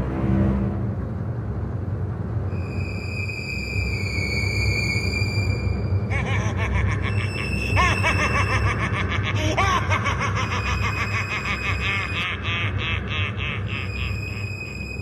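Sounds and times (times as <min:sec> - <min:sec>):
low steady drone: 0:00.0 - 0:15.0
man laughing: 0:06.1 - 0:14.4.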